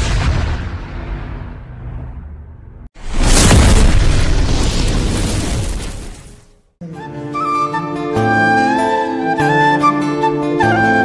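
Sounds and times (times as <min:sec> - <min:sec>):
deep explosion boom: 0:00.0 - 0:06.1
crackling explosion boom: 0:00.0 - 0:06.7.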